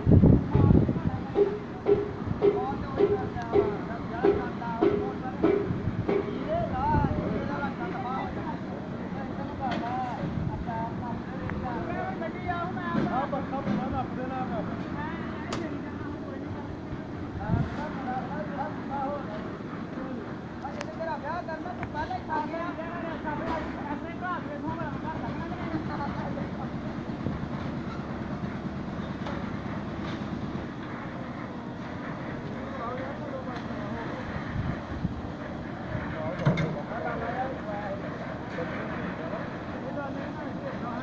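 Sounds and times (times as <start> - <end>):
outdoor noise: 0.0 - 41.0.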